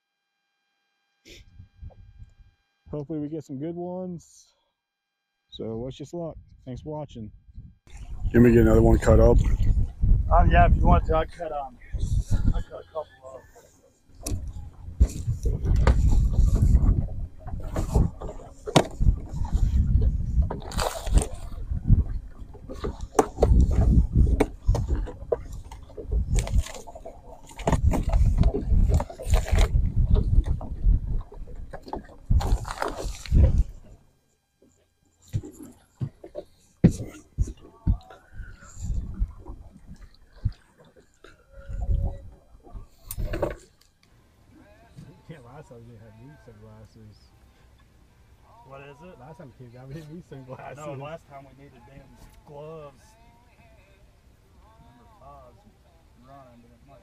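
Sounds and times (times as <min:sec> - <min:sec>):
wind rumble on microphone: 0:01.3 - 0:02.5, 0:06.3 - 0:13.0, 0:14.2 - 0:34.0, 0:36.8 - 0:43.6
water sloshing: 0:11.1 - 0:44.0
knocks and thumps on boat deck: 0:14.2 - 0:32.6, 0:35.3 - 0:40.6.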